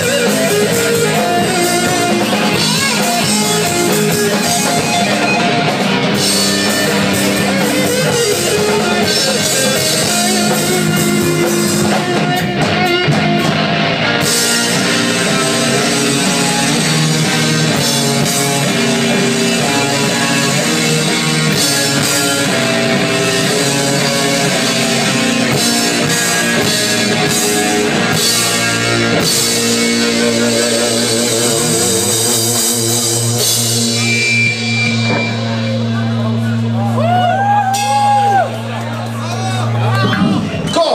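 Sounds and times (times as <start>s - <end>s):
high steady whine: 0.0s - 40.8s
rock band with electric guitars: 0.0s - 40.9s.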